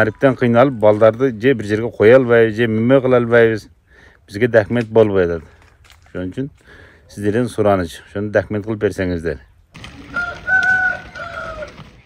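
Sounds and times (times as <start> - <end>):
rooster crowing: 10.0 - 12.0.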